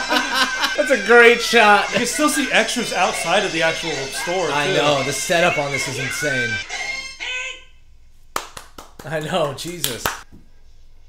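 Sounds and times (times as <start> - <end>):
sharp hand claps: 8.3 - 10.3.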